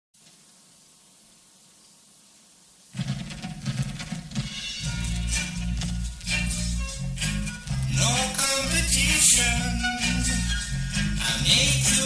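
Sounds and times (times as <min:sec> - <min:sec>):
low hiss: 0:00.2 - 0:12.0
reggae music: 0:03.0 - 0:12.0.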